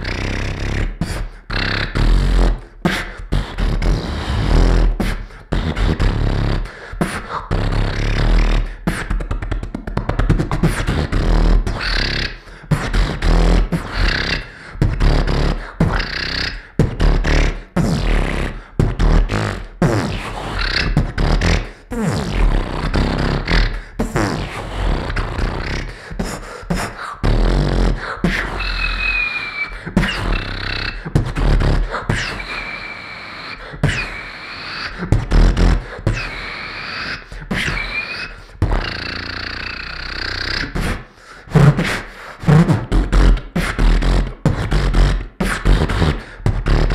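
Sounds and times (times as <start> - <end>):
person beatboxing into a microphone: 0.0 - 46.9.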